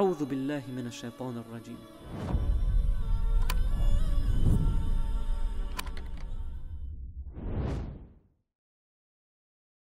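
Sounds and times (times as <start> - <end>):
low rumble: 2.3 - 8.2.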